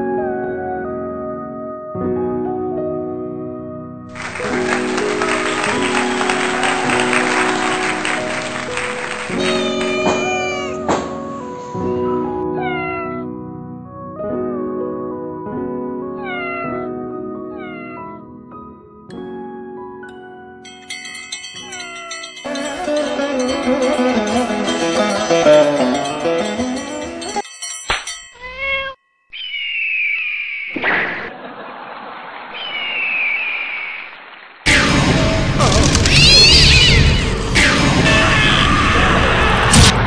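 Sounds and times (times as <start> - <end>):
background music: 0.0 - 27.4
cat meowing: 9.3 - 13.3, 16.2 - 18.2, 28.4 - 30.6, 32.6 - 33.1, 36.0 - 37.5.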